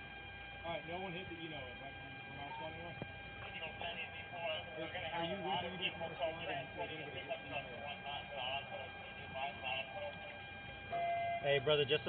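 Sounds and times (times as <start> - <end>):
faint steady whine: 0.0 - 12.0
indistinct voices talking: 0.6 - 12.0.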